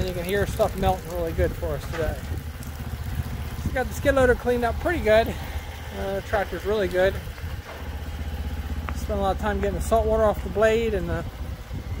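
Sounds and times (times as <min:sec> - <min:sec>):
large diesel engine idling: 0:00.0 - 0:12.0.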